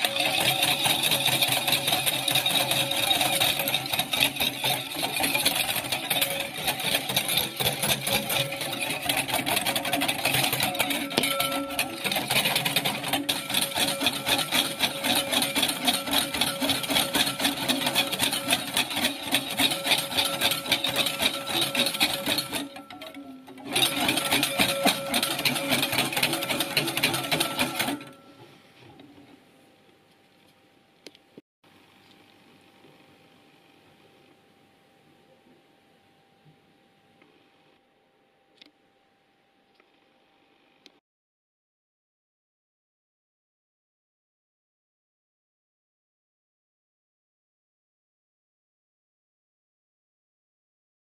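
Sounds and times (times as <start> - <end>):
wire whisk beating in ceramic bowl: 0.0 - 28.5.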